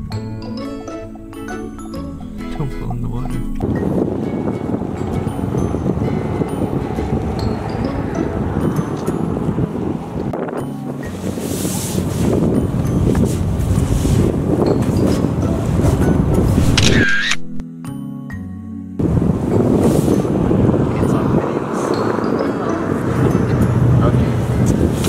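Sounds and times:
wind buffeting microphone: 0.0s - 17.3s, 19.0s - 25.0s.

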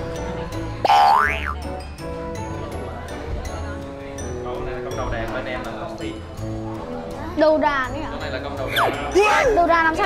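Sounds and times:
light background music: 0.0s - 10.0s
cartoon boing sound effect: 0.9s - 1.6s.

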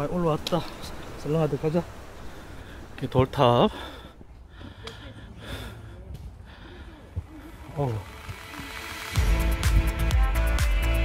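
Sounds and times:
person breathing: 3.7s - 8.2s.

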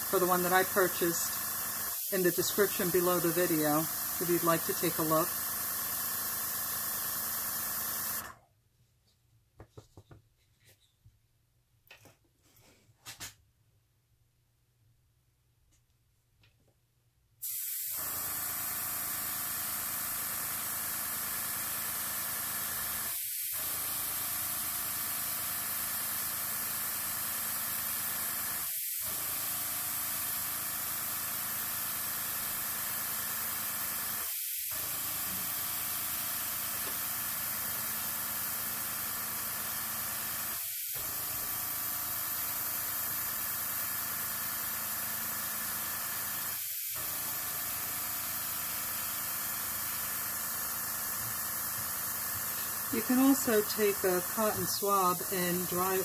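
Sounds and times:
airbrush hissing: 0.0s - 6.6s, 46.3s - 56.0s.

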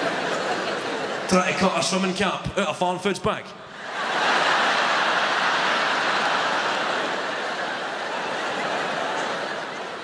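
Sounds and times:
audience laughing: 0.0s - 1.6s, 3.7s - 10.0s
audience applauding: 4.0s - 9.2s.

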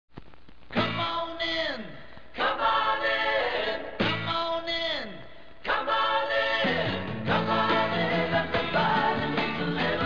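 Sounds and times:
group singing jingle in harmony: 2.4s - 4.3s, 5.6s - 10.0s.

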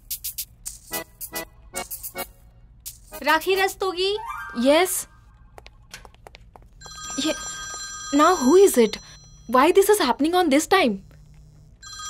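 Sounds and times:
person speaking: 3.2s - 5.2s
telephone ringing: 6.8s - 12.0s.

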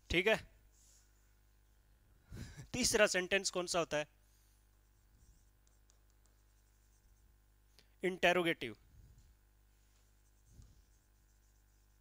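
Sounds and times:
stylus tapping on touchscreen: 5.6s - 6.6s.

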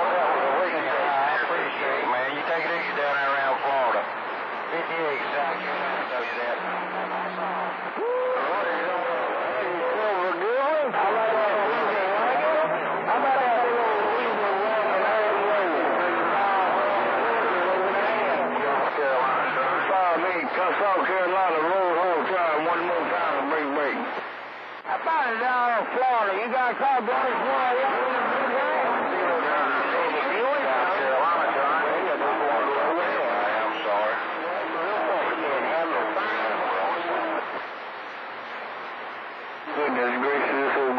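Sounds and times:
garbled radio voices: 0.0s - 40.9s
radio static: 0.0s - 40.9s.

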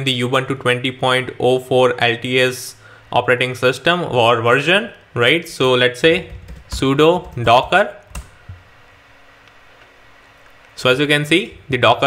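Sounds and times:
low room hum: 0.0s - 12.0s
computer keyboard clicks: 6.2s - 8.4s.

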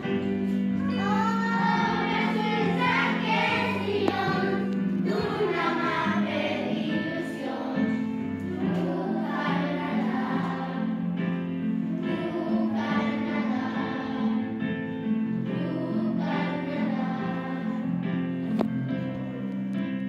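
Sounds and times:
instrumental backing music: 0.0s - 20.0s
children singing: 0.8s - 14.9s, 15.5s - 17.9s.

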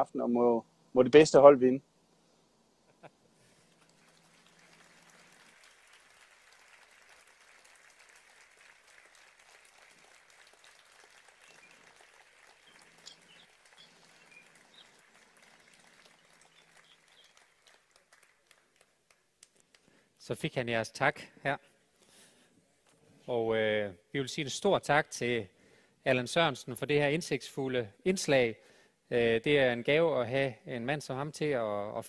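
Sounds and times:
faint audience applause: 3.4s - 20.0s.

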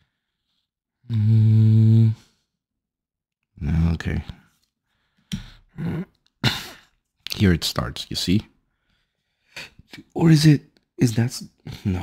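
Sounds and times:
man's non-word vocal sounds: 1.1s - 2.4s, 5.7s - 6.3s.

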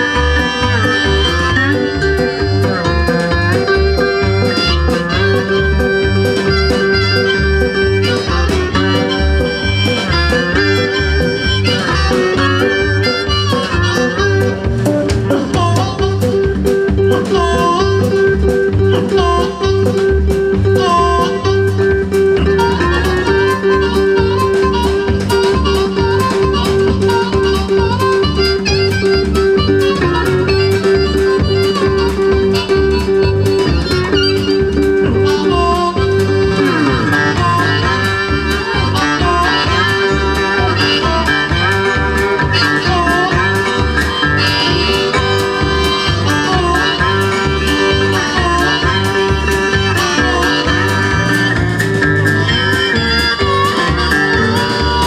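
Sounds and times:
electric bass: 0.0s - 55.0s
guitar: 0.0s - 55.0s
harmonica: 0.0s - 55.0s
steady drum beat: 0.0s - 55.0s.

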